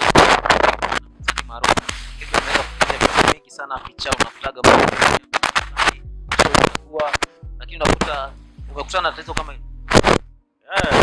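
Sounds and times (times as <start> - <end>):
music with deep bass and beats: 0.0 - 3.4, 4.0 - 10.4
man talking: 0.9 - 9.6, 10.7 - 11.0.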